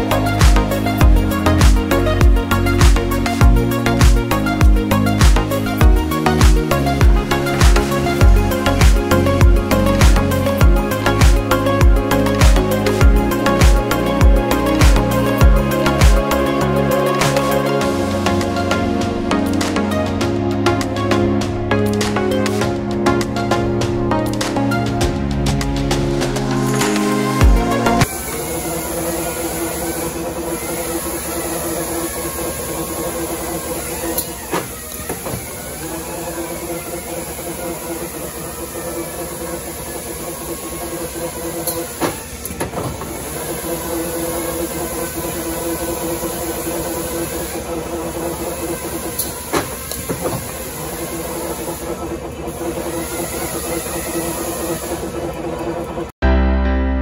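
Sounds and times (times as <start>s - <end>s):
coil winding machine humming: 26.2s - 56.1s.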